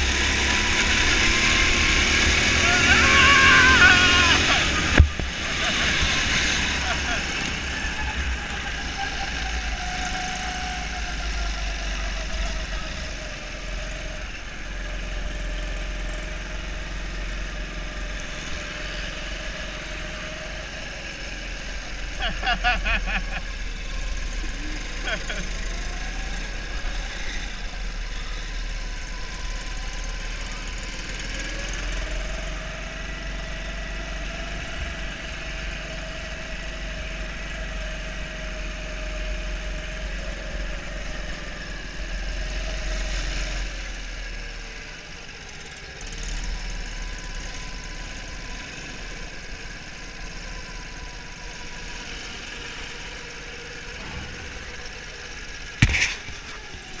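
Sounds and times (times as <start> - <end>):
go-kart engine running: 0.0 - 57.0
sharp knock: 55.8 - 56.6.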